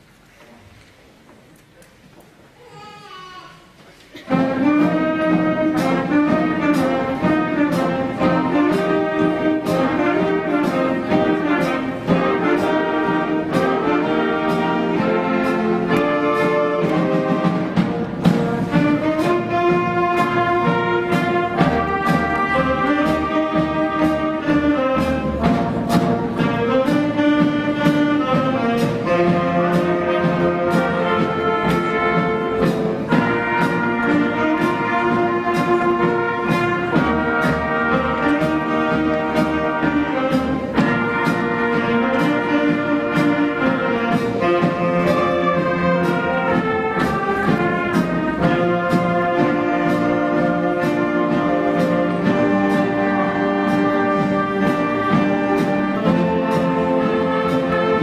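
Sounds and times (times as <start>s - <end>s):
jazz band playing: 4.2s - 58.0s.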